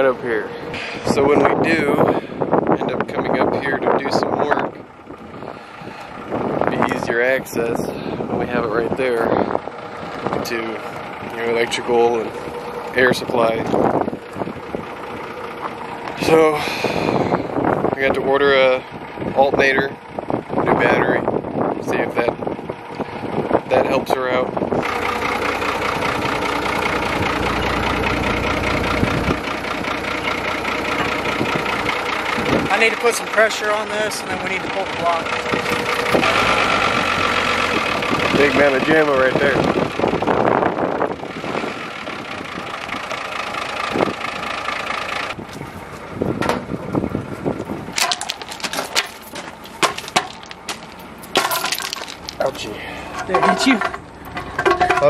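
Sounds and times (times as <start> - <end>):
deep low rumble: 0.0 - 18.3, 24.4 - 32.7
engine idling: 0.0 - 55.0
footsteps crunching on gravel: 47.4 - 52.7
wooden board set down: 48.0 - 52.4
stones clicking: 48.0 - 52.5.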